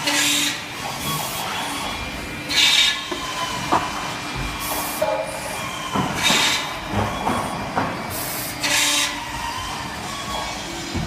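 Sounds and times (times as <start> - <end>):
steady machine hum: 0.0 - 11.0
pneumatic clamps clunking: 2.5 - 11.0.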